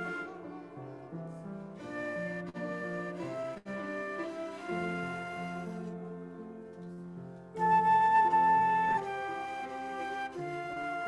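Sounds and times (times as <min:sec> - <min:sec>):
flute playing slow melody: 0:00.0 - 0:06.5, 0:07.5 - 0:11.0.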